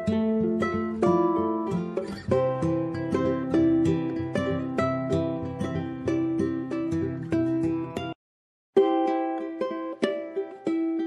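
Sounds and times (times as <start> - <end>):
plucked guitar music: 0.0 - 8.2, 8.8 - 11.0.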